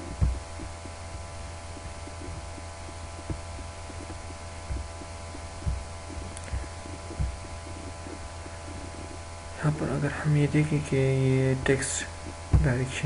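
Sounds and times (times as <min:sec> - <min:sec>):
dull low thumps: 0:00.0 - 0:09.6, 0:12.2 - 0:12.9
faint whining tones: 0:00.0 - 0:13.0
low electrical hum: 0:00.0 - 0:13.0.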